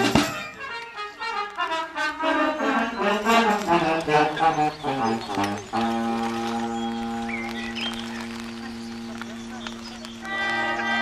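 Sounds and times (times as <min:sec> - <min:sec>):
wind band sustained chord: 0:00.6 - 0:11.0.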